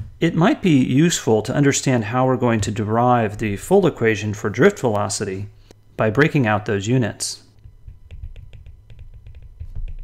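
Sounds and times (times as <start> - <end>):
stylus tapping on tablet screen: 7.6 - 10.0.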